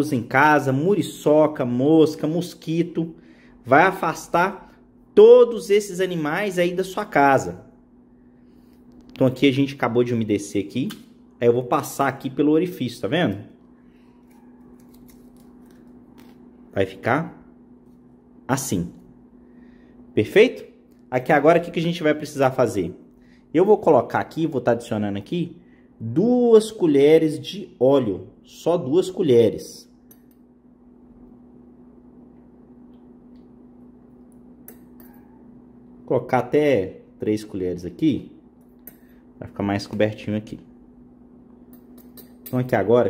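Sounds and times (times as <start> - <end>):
steady low hum: 0.0 - 43.0
metal spoon clinking glass cup: 34.6 - 35.4, 41.7 - 42.7.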